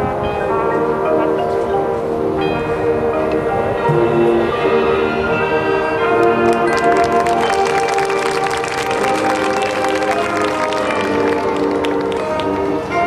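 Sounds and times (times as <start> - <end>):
marching band playing chords: 0.0 - 13.0
sharp percussion strokes: 3.7 - 10.4.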